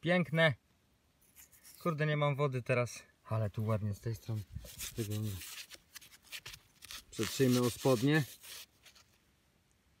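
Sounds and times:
coin rubbing on fabric: 1.2s - 2.0s, 4.2s - 9.2s.

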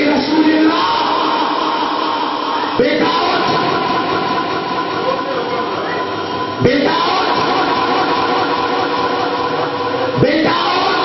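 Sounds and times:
man singing a long note: 0.0s - 11.0s.

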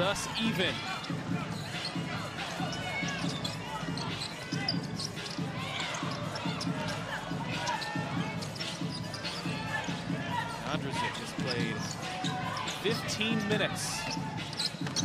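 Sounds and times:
players calling out: 0.0s - 15.0s
sneakers squeaking on floor: 0.0s - 15.0s.

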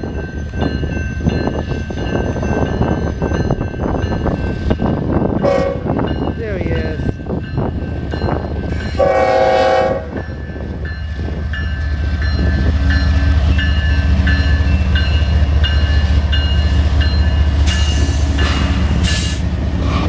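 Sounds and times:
diesel locomotive engine rumble: 0.0s - 20.0s
locomotive horn blast: 5.4s - 5.9s, 9.0s - 10.2s.

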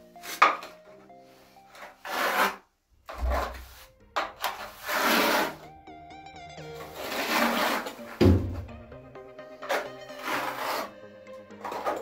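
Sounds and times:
quiet background music: 0.0s - 12.0s
trowel scraping adhesive: 1.7s - 5.6s, 6.8s - 8.1s, 9.6s - 11.0s, 11.6s - 12.0s.

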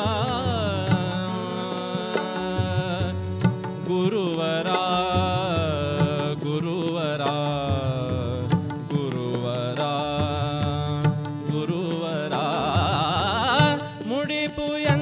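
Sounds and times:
harmonium melody: 0.0s - 15.0s
man singing: 0.0s - 15.0s
tabla strokes: 0.0s - 15.0s.

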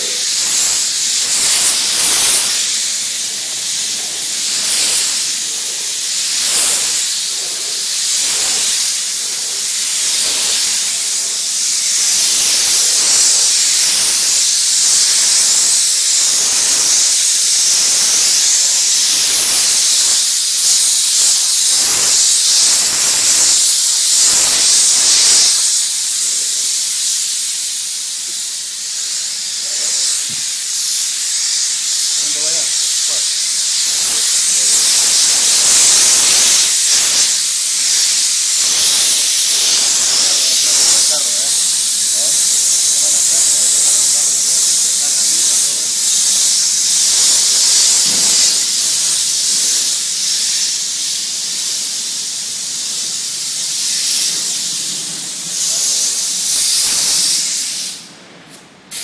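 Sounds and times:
pressurized spray hissing: 0.0s - 59.0s.

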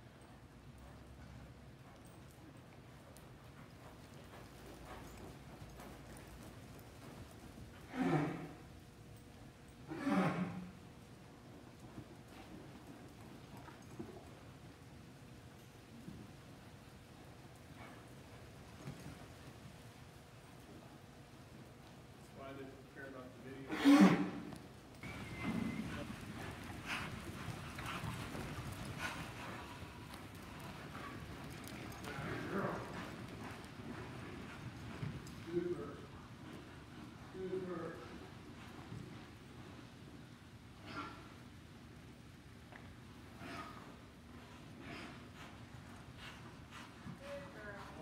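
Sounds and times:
horse hoofbeats on soft dirt: 0.0s - 48.0s.

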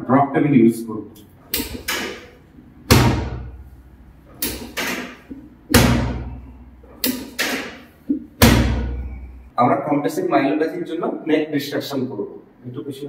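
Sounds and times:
drop table clacking thuds: 4.4s - 6.4s.

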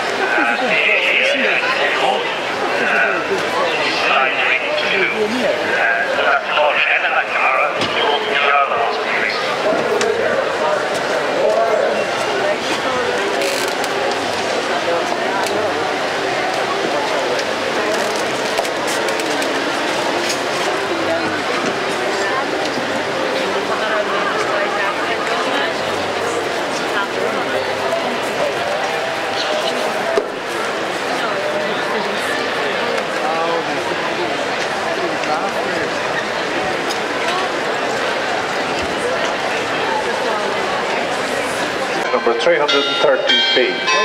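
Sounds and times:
babble of many people talking: 0.0s - 44.0s
crowd murmur: 0.0s - 44.0s.

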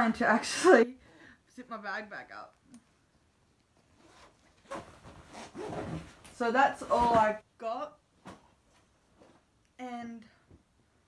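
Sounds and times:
bag zipper rasping: 4.0s - 6.2s.

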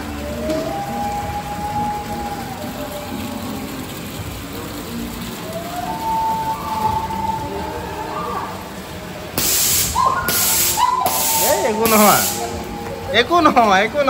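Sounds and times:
distant music notes: 0.0s - 14.0s
murmuring voices: 0.0s - 14.0s.

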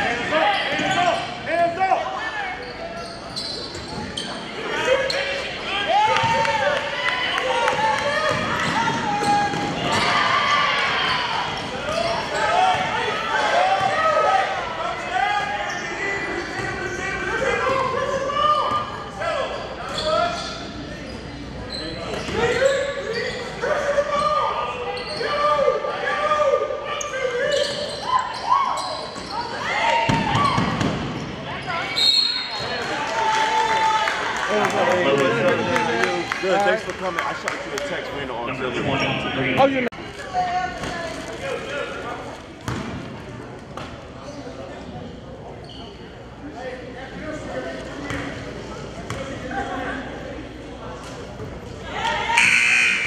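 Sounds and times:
referee's whistle: 32.0s - 32.7s, 52.3s - 53.0s.

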